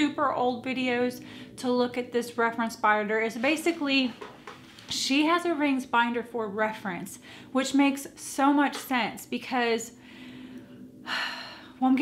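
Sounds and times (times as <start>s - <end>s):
woman speaking: 0.0s - 4.2s, 4.9s - 10.0s, 11.8s - 12.0s
woman breathing in and out: 1.2s - 1.6s, 7.2s - 7.6s, 9.9s - 11.8s.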